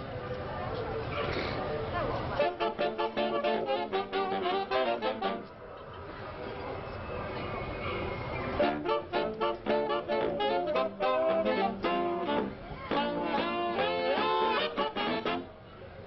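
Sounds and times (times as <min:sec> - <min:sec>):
saxophone ensemble playing swing: 0:02.4 - 0:05.6, 0:08.6 - 0:15.6.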